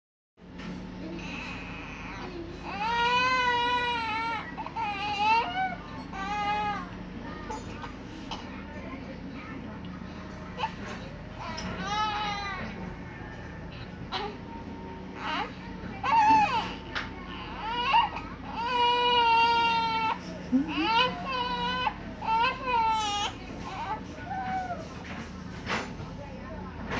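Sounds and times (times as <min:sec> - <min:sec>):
baby crying: 0:02.6 - 0:06.9, 0:15.2 - 0:16.8, 0:17.4 - 0:24.8.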